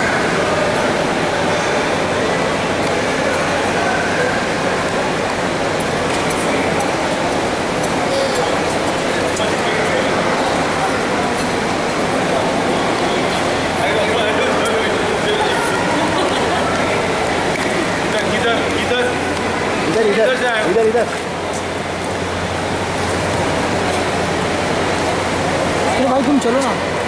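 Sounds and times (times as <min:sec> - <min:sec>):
crowd voices talking: 0:00.0 - 0:27.0.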